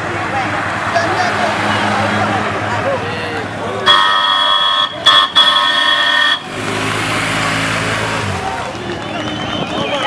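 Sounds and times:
street noise: 0.0 - 10.0
vehicle horn blasts: 3.8 - 6.6
low engine hum: 6.4 - 10.0.

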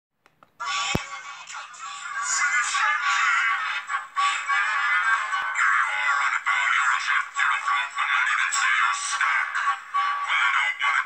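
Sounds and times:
sped-up singing from laptop speakers: 0.5 - 11.0.

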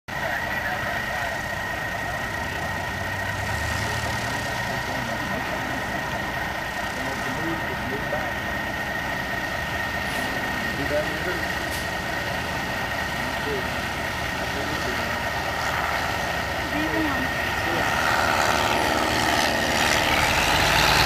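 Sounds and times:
faint voices: 0.1 - 21.0
light aircraft engines humming: 0.1 - 21.0
steady high tone: 0.1 - 21.0.

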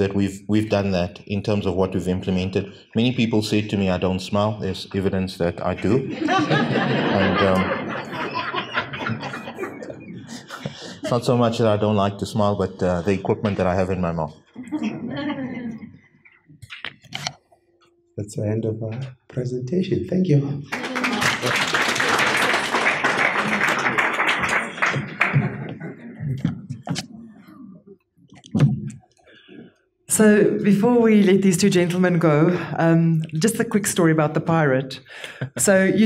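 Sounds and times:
chuckling laughter: 6.0 - 11.1
audience applauding: 20.7 - 26.0.

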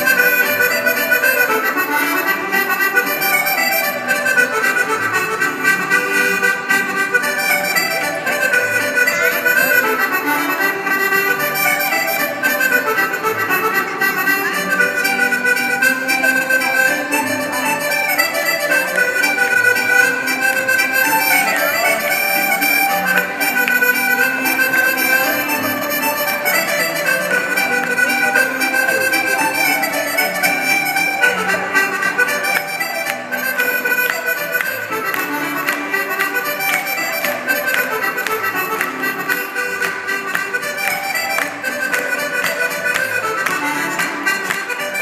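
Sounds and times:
accordion dance music over speakers: 0.0 - 45.0
dance shoes tapping on stage: 7.5 - 45.0.

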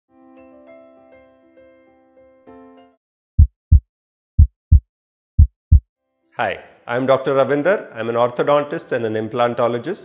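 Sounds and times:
heartbeat sound effect: 3.4 - 5.8.

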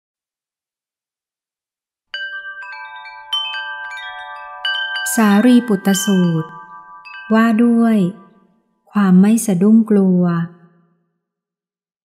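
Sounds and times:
chimes ringing: 2.2 - 8.9
person reciting: 5.1 - 6.6, 7.3 - 8.2.

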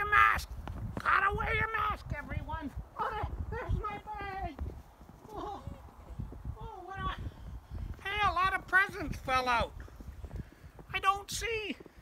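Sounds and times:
man exclaiming: 1.0 - 4.6, 5.2 - 5.9, 6.6 - 7.2.

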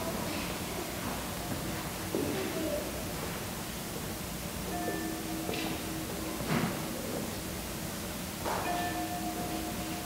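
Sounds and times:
low wavering bell hum: 4.6 - 7.4, 8.6 - 10.0
bell ringing: 4.7 - 6.5, 8.6 - 10.0.

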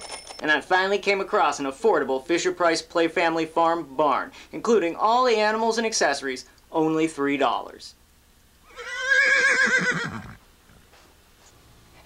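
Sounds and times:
horse whinnying: 8.6 - 10.9.

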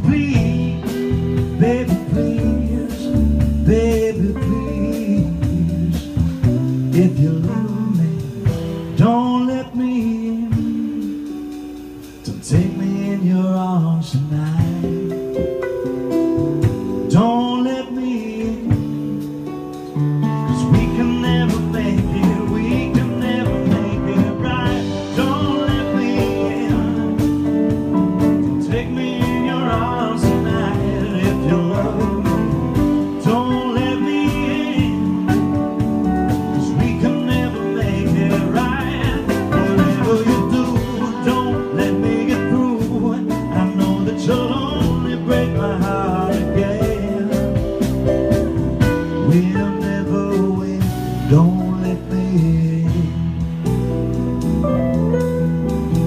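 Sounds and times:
person singing: 0.0 - 11.4, 17.0 - 19.3, 20.5 - 48.5, 49.1 - 53.4
guitar: 0.0 - 56.0
live band playing slow song: 0.0 - 56.0
steady drum beat: 0.0 - 56.0
keyboard: 10.5 - 56.0.

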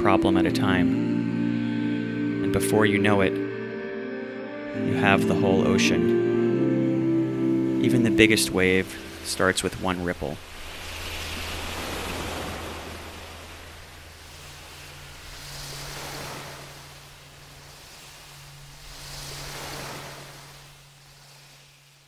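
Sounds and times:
low steady hum: 0.0 - 22.0
ocean surf washing in: 0.0 - 22.0.

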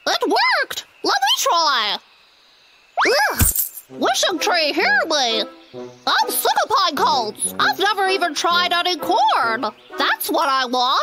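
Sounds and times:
coin landing with a clink: 3.4 - 3.9.

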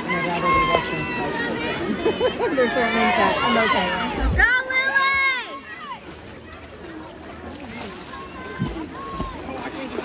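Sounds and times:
faint distant voices: 0.0 - 10.0
swimmer splashing in pool: 0.0 - 10.0
low splashing thuds: 6.0 - 10.0.

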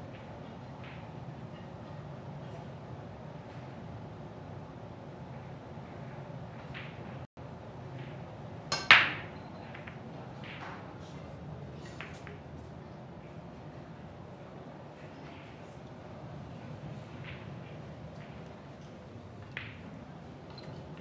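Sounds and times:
cue ball breaking racked balls: 8.8 - 10.8.

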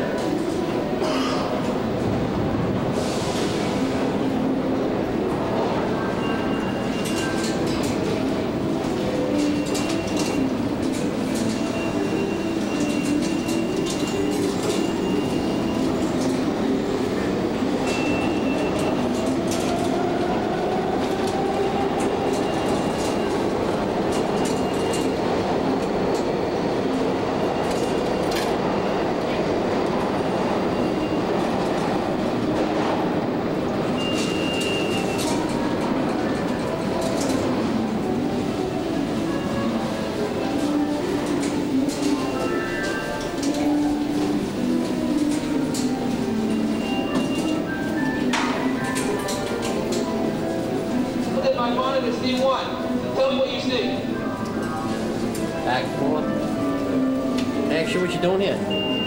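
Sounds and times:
subway train running: 0.0 - 59.0.

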